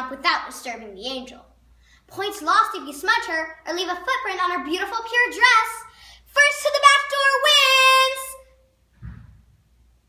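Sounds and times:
soft low thump: 9.0s - 9.6s.

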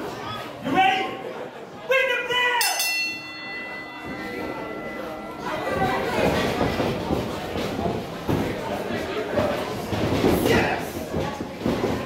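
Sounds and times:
crowd voices and shouts: 0.0s - 12.0s
ring bell ringing: 2.6s - 7.0s.

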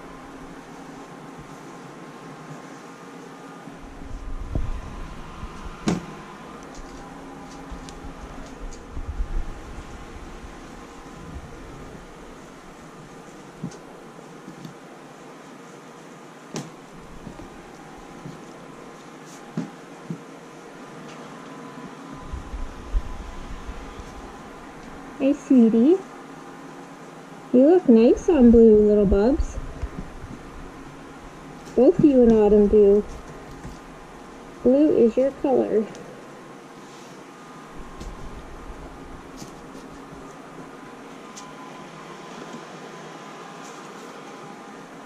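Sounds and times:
steady background hum: 0.0s - 45.0s.

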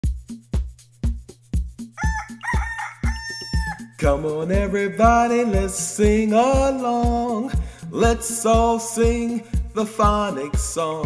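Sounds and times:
steady drum beat: 0.0s - 11.0s
rooster crowing: 2.0s - 4.0s.

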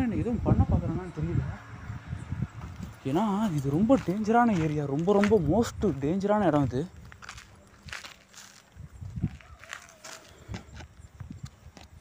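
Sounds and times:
soft footsteps and scuffs: 2.6s - 12.0s.

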